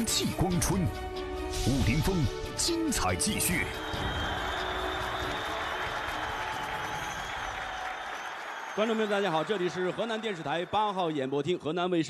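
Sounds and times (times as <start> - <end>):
audience applauding: 3.2 - 11.7.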